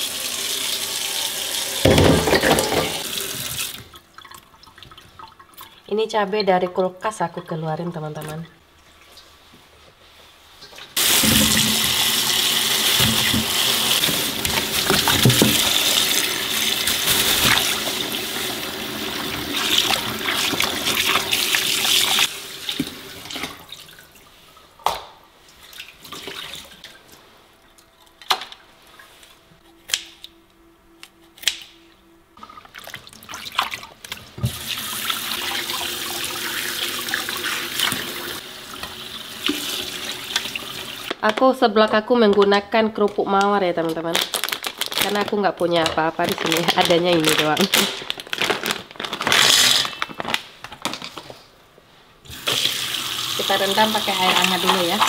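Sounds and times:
tap running into metal bowl: 0:01.8 - 0:03.1.

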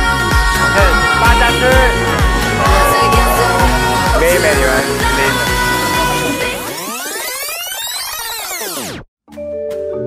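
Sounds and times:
pop music: 0:00.0 - 0:06.9.

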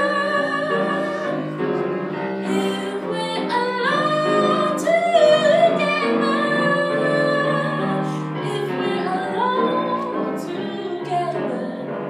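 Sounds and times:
piano accompaniment: 0:00.0 - 0:12.0
woman singing jazz: 0:00.0 - 0:12.0.

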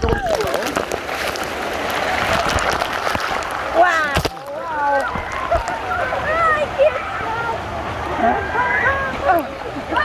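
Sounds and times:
water splashing: 0:00.0 - 0:10.0.

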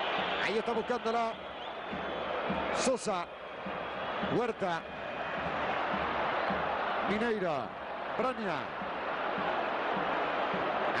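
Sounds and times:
stadium crowd hum: 0:00.0 - 0:11.0.

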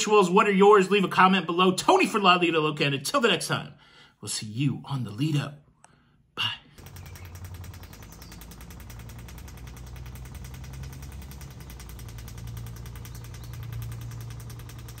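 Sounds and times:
pool cleaner fast ticking: 0:06.8 - 0:15.0
pool pump humming: 0:06.8 - 0:15.0.

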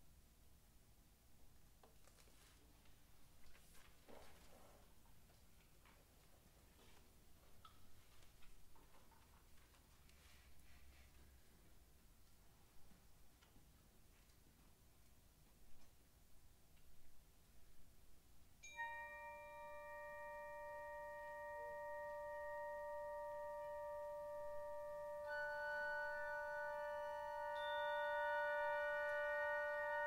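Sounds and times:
bell-like chord ringing: 0:18.7 - 0:30.0.

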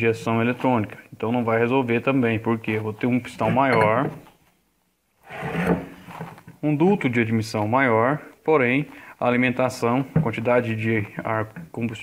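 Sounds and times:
metal scraping on workbench: 0:05.2 - 0:06.3.

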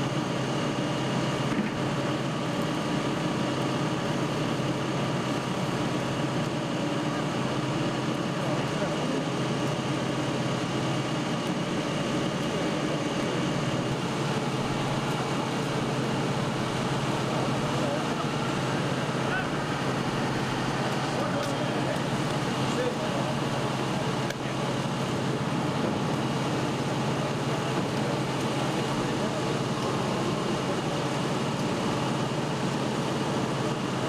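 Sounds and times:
engine and traffic noise: 0:00.0 - 0:34.0.

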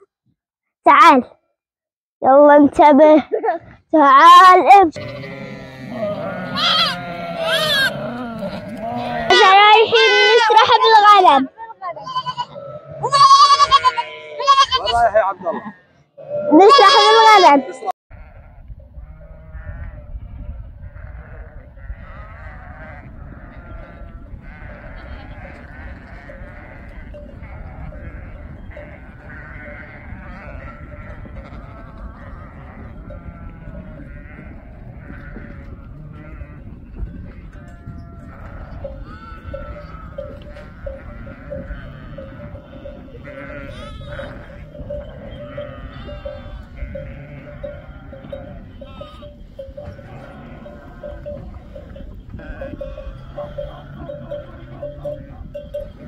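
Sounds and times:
sheep and lambs bleating: 0:03.2 - 0:56.0.

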